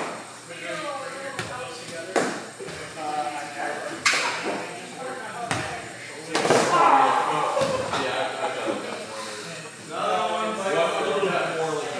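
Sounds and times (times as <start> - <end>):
loud voices: 6.3 - 11.8.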